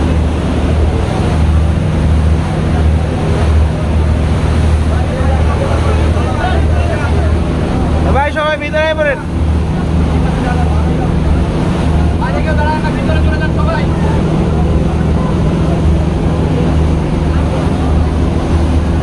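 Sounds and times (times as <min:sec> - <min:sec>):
boat engines throbbing: 0:00.0 - 0:19.0
people's voices: 0:00.0 - 0:19.0
water rushing past hull: 0:00.0 - 0:19.0.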